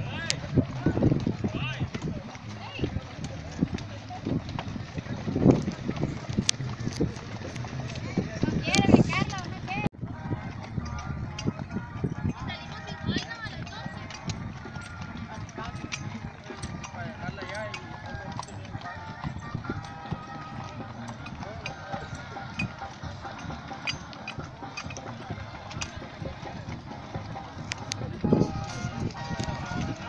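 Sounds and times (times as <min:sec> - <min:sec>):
horse hooves clip-clopping on dirt: 0:00.0 - 0:30.0
indistinct chatter of riders: 0:00.0 - 0:30.0.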